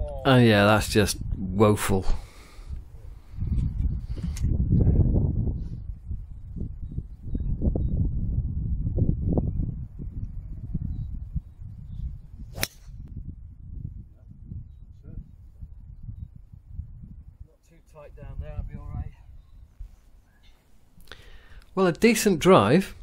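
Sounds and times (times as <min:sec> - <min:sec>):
golf club striking ball: 0:12.5 - 0:13.0.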